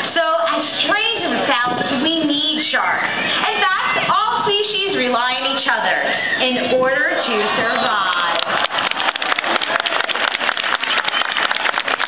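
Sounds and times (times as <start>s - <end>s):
audience clapping: 8.0s - 12.0s.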